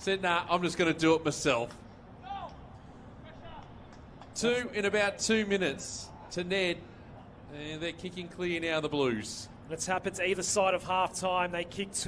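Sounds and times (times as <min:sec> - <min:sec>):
open-air ambience: 0:00.0 - 0:12.0.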